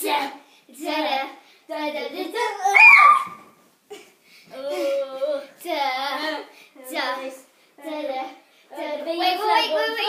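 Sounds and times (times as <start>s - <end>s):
child singing wordless tune: 0.0s - 2.8s, 4.5s - 10.0s.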